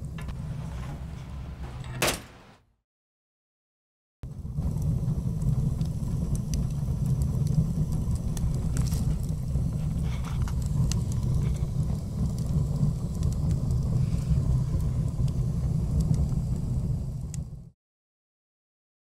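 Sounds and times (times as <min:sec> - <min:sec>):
steady low rumble: 0:00.0 - 0:02.0, 0:04.3 - 0:17.6
faint crackles: 0:04.6 - 0:17.4.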